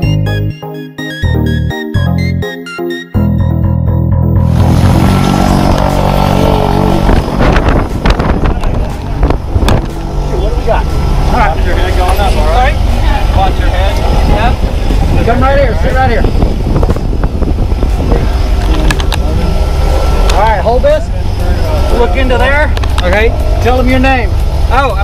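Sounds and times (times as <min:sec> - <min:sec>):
propeller plane engine droning: 0:04.4 - 0:25.0
voices calling out: 0:17.9 - 0:25.0.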